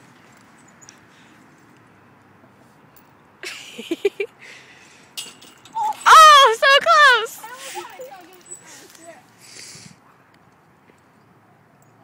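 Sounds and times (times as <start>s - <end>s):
outdoor background noise: 0.0s - 12.0s
girl laughing: 3.4s - 4.4s
girl speaking: 5.8s - 9.2s.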